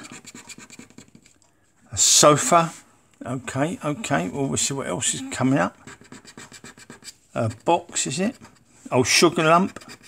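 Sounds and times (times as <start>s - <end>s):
coin scratching scratchcard: 0.0s - 1.3s.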